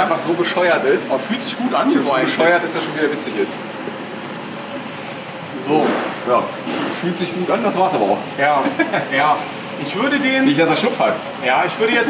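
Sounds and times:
steady machine noise: 0:00.0 - 0:12.0.

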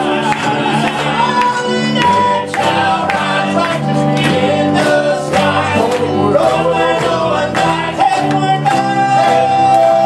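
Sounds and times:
guitar: 0:00.0 - 0:10.0
keyboard: 0:00.0 - 0:10.0
male quartet singing in harmony: 0:00.0 - 0:10.0.

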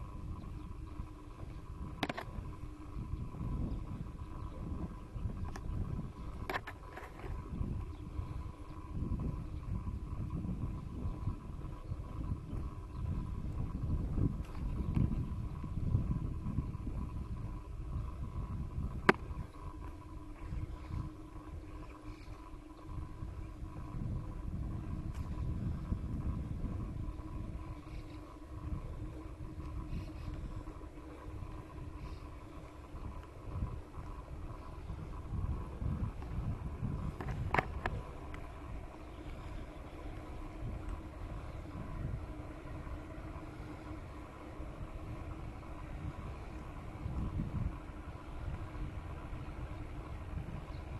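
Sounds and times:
faint even hum: 0:00.0 - 0:50.9
faint steady whine: 0:00.0 - 0:50.9
rumble of riding on pavement: 0:00.0 - 0:50.9
wind buffeting microphone: 0:00.0 - 0:50.9.

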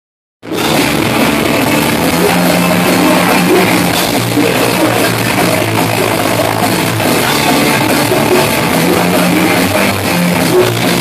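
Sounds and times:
bass guitar: 0:00.4 - 0:11.0
drum kit: 0:00.4 - 0:11.0
electric guitar: 0:00.4 - 0:11.0.

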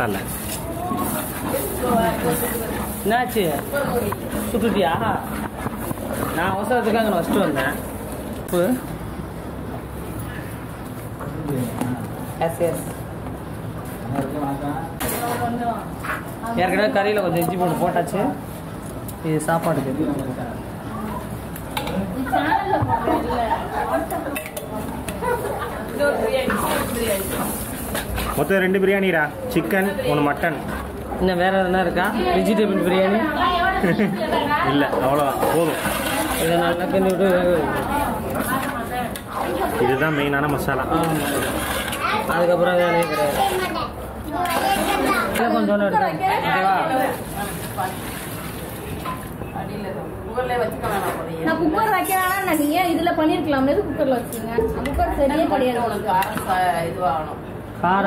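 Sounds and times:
overlapping chatter: 0:32.0 - 0:57.7.

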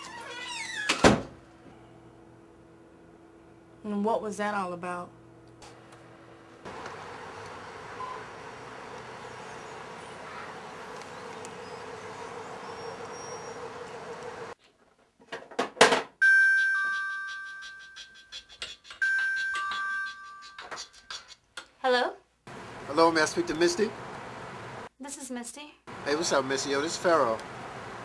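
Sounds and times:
phone ringing two-note chime: 0:16.2 - 0:17.3.

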